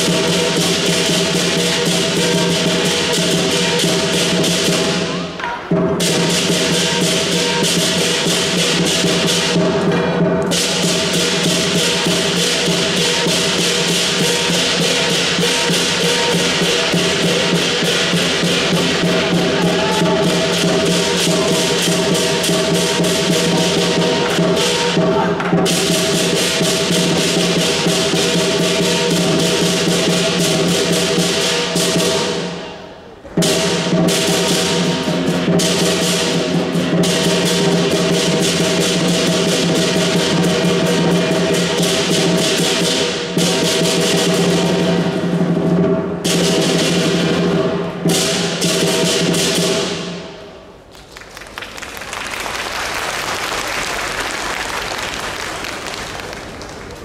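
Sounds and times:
gong: 0.0s - 32.8s
large drum beating: 0.0s - 50.5s
cymbals clashing: 0.0s - 50.9s.

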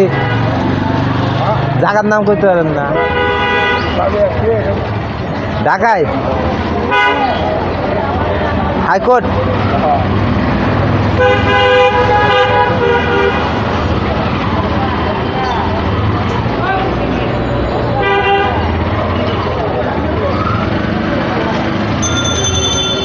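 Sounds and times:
vehicle horns honking: 0.0s - 0.6s, 2.9s - 4.1s, 6.9s - 7.5s, 11.1s - 13.6s
street traffic: 0.0s - 23.0s.

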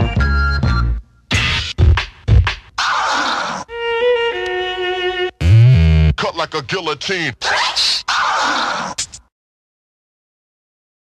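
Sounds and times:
loud deep tone: 5.4s - 6.3s
short sound stabs: 5.4s - 6.3s.

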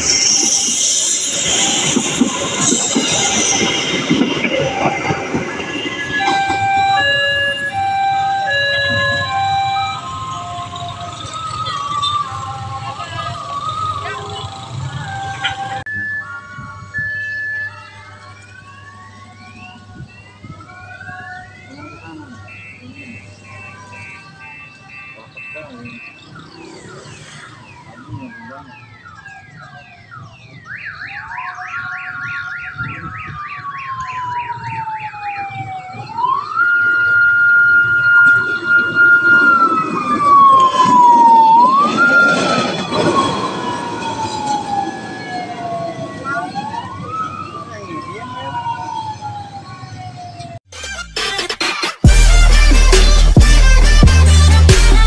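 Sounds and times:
steel wheels rumbling on rails: 0.0s - 7.7s
rising whistle-like tones: 0.0s - 34.3s
electronic siren yelp and wail: 0.0s - 55.0s
level crossing alarm: 0.0s - 55.0s.

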